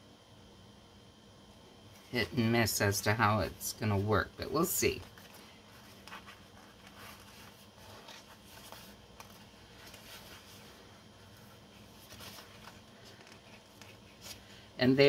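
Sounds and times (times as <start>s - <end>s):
paper sticker sheet rustling: 4.8s - 14.6s.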